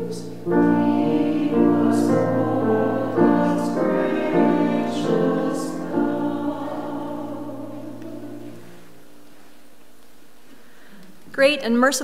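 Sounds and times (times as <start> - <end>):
group singing a hymn: 0.0 - 9.3.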